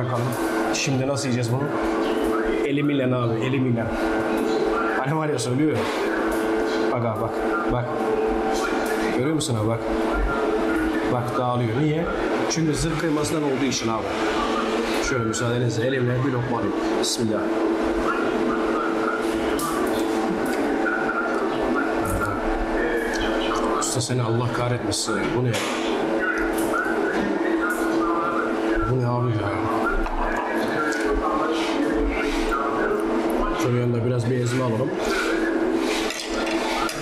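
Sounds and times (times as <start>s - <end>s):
mechanical hum: 0.0s - 37.0s.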